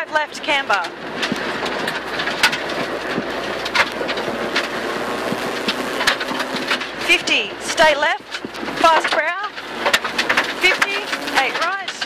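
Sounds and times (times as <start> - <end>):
car engine running hard: 0.2 - 12.0
stones ticking on car: 0.7 - 12.0
tyre and gravel rumble: 0.8 - 12.0.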